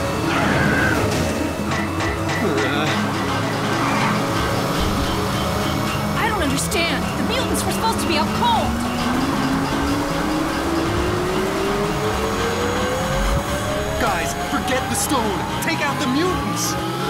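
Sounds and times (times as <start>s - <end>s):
music: 0.0s - 17.0s.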